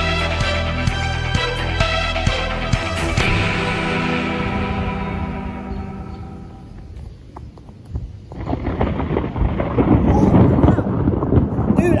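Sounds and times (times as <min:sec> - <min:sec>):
loud low rough thunder noise: 0:03.2 - 0:06.9, 0:08.3 - 0:12.0.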